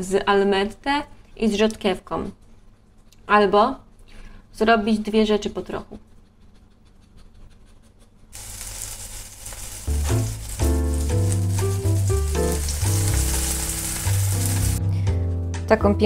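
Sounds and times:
food sizzling in a frying pan: 0:08.4 - 0:14.8.

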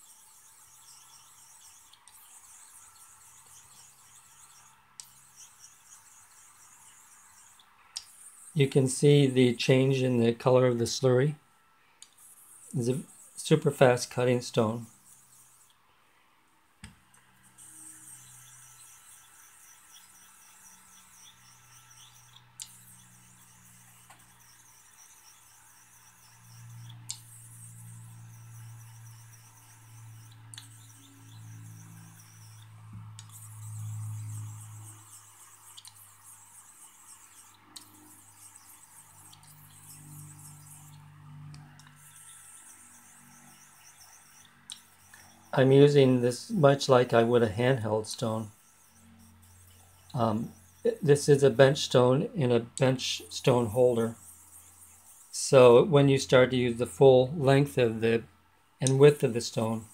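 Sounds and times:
razor scraping on whetstone: 0:00.0 - 0:10.1, 0:12.2 - 0:15.8, 0:17.4 - 0:52.0, 0:52.9 - 0:55.8.

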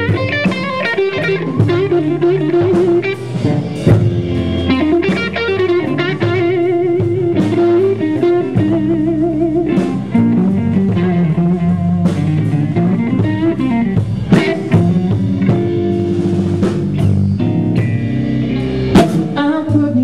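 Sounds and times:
drum kit: 0:00.0 - 0:20.0
electric bass: 0:00.0 - 0:20.0
electric guitar lead with bent notes: 0:00.0 - 0:20.0.

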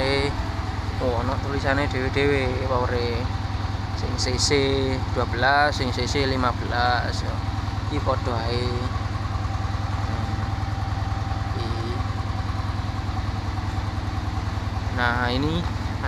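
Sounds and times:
man talking: 0:00.0 - 0:00.4, 0:01.0 - 0:03.3, 0:04.0 - 0:08.9, 0:10.0 - 0:10.5, 0:11.6 - 0:12.0, 0:14.9 - 0:15.7
engine idling: 0:00.0 - 0:16.0.

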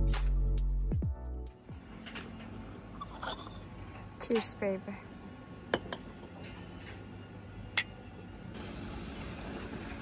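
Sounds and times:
coffee cups clinking: 0:02.1 - 0:03.7, 0:05.7 - 0:07.0.

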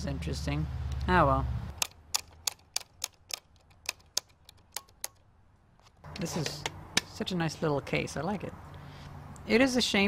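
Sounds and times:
hands clicking on metal case: 0:01.7 - 0:07.1.

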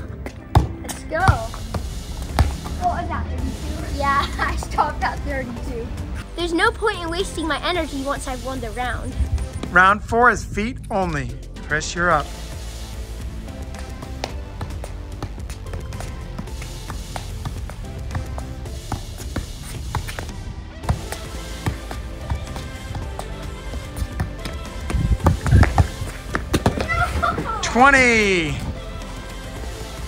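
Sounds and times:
ball thumps: 0:00.0 - 0:02.8, 0:13.8 - 0:27.5
background music: 0:00.0 - 0:30.0
soccer ball taps on feet: 0:00.1 - 0:02.8, 0:14.2 - 0:27.0.

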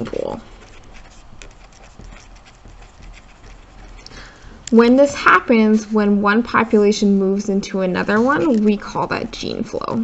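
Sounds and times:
pen scratching on paper: 0:00.0 - 0:04.4, 0:08.0 - 0:09.2.

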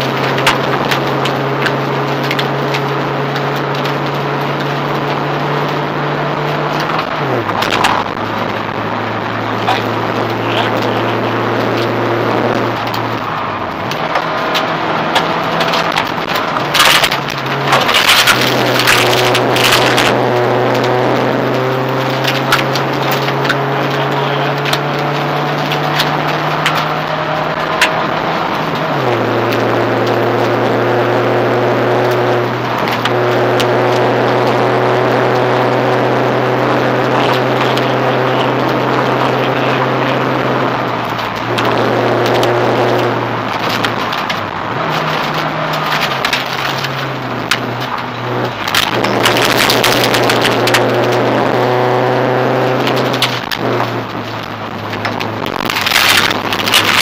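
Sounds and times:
gravel road noise: 0:00.0 - 0:57.0
rally car engine under load: 0:00.0 - 0:57.0.

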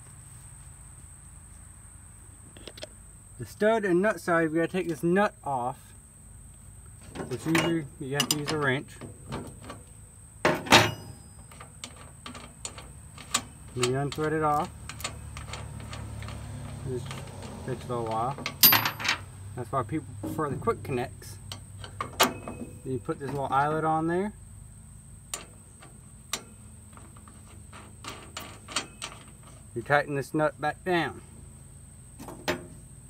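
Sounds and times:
small metallic clicks: 0:07.0 - 0:19.3, 0:21.4 - 0:23.7, 0:25.3 - 0:29.6.

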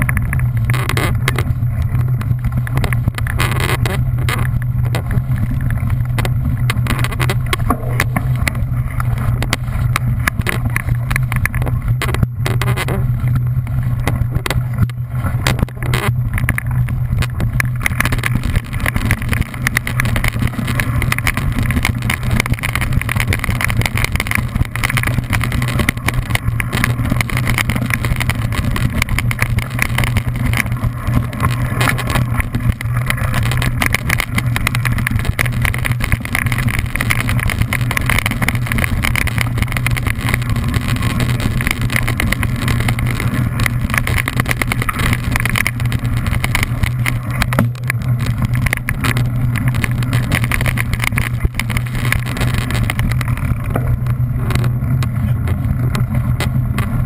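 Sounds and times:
bike rattling: 0:00.0 - 0:57.0
tyre and wind rumble: 0:00.0 - 0:57.0.

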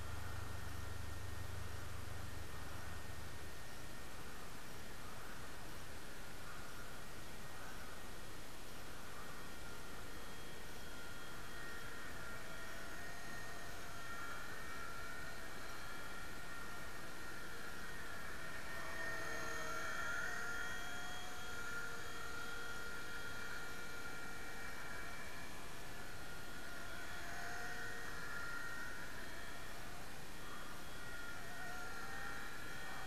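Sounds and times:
model helicopter motor whine: 0:08.8 - 0:33.0.

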